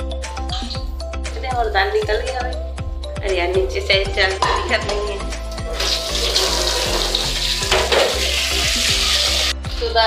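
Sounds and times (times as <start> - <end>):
background music with a beat: 0.0 - 10.0
water running from a tap: 5.5 - 9.6.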